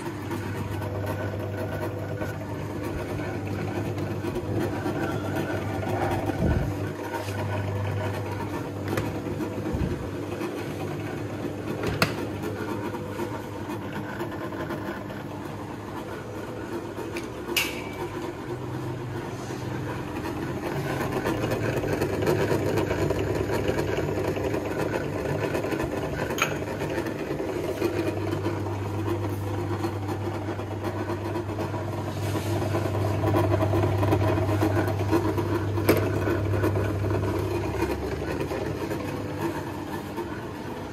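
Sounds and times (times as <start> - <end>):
transformer humming and buzzing: 0.0 - 40.9.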